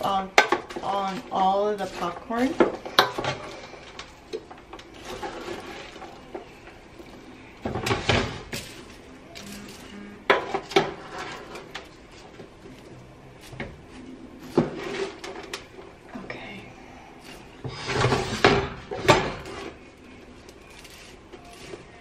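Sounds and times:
metal spoon scraping a pan: 0.0s - 4.1s
popcorn rustling: 0.0s - 22.0s.

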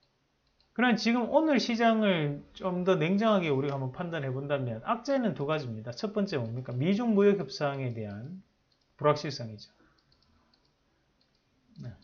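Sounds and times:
computer mouse clicks: 0.0s - 0.8s, 8.1s - 9.0s, 9.9s - 12.0s
person speaking: 0.8s - 8.4s, 9.0s - 9.8s, 11.8s - 12.0s.

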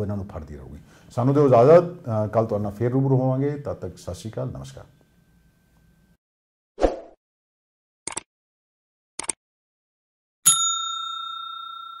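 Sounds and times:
notification bell ding: 10.5s - 12.0s.

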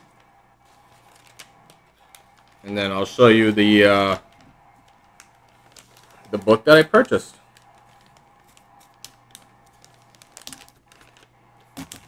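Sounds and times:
plastic packaging clicks and taps: 8.8s - 12.0s.

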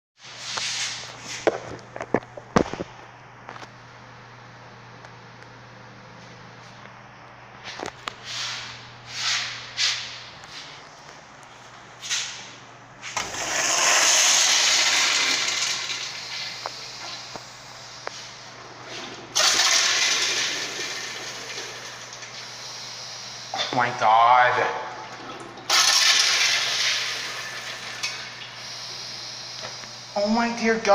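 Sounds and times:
toilet flushing: 13.1s - 17.4s, 18.6s - 22.8s, 23.6s - 28.9s.

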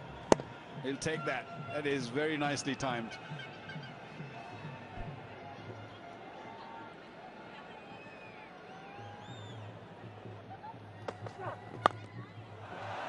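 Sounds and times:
faint stadium crowd noise: 0.0s - 13.0s
cricket bat striking ball: 11.1s - 12.1s.

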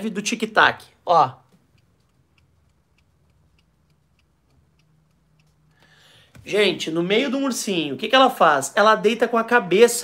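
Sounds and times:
alarm clock ticking: 0.0s - 7.8s.

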